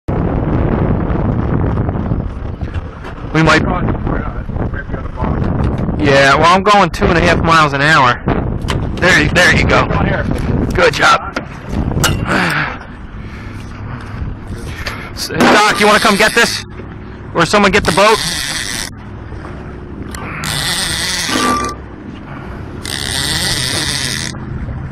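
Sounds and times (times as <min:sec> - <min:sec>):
wind rumbling on microphone: 0:00.0 - 0:24.9
small boat motor running: 0:11.4 - 0:24.9
fishing reel cranking whir: 0:17.8 - 0:19.0, 0:20.1 - 0:21.8, 0:22.8 - 0:24.4.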